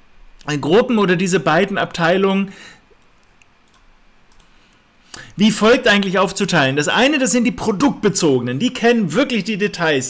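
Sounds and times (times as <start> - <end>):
faint sharp clicks: 3.0 - 4.5.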